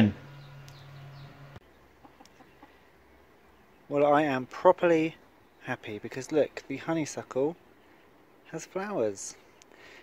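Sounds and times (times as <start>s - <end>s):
faint chicken clucking: 1.6s - 3.9s.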